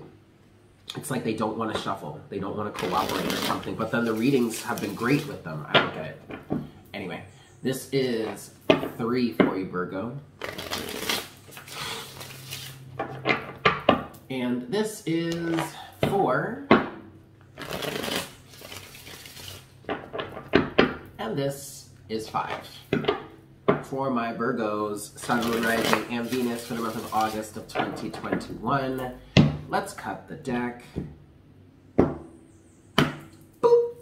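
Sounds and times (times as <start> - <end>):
cards rustling: 2.7 - 5.4, 10.4 - 13.6, 17.6 - 20.5, 25.2 - 28.1.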